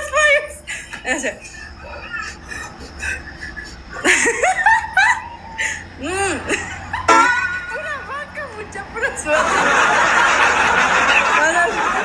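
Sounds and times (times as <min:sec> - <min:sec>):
low steady hum: 0:00.0 - 0:10.4
stifled laughter: 0:00.7 - 0:07.1.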